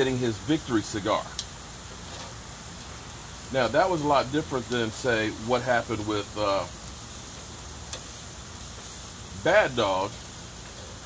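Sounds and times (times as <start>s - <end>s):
meat sizzling on a grill: 0.0s - 11.0s
metal tongs clicking on grate: 7.9s - 8.2s.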